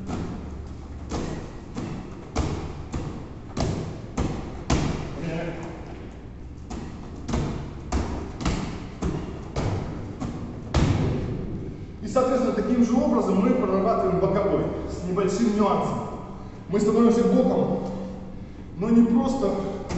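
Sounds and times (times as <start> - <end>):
medicine ball thudding into hands: 0.0 - 5.2, 6.6 - 11.8, 19.4 - 19.9.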